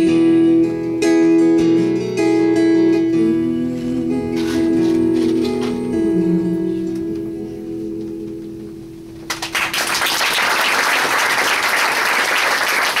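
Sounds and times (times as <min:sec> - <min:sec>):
acoustic guitar chord ringing: 0:00.0 - 0:09.4
audience applause: 0:09.3 - 0:13.0.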